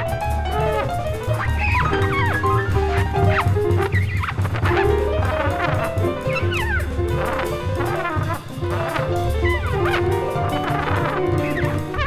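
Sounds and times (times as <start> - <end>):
acoustic bass: 0.0 - 12.0
held piano notes: 0.0 - 12.0
trumpet falling smears: 0.0 - 12.0.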